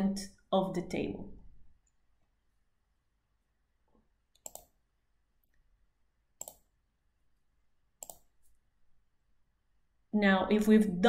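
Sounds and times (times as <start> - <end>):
computer mouse clicks: 4.3 - 4.8, 6.4 - 6.7, 8.0 - 8.6.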